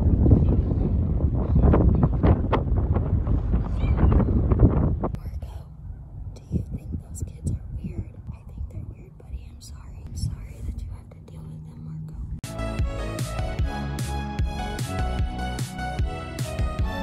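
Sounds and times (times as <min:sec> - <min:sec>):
woman speaking softly: 0:05.2 - 0:05.8, 0:06.4 - 0:12.4
background music: 0:12.4 - 0:17.0.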